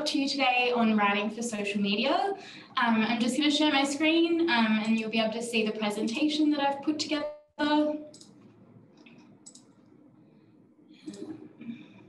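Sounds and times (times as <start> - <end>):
computer mouse clicks: 8.1 - 10.0, 11.0 - 11.5.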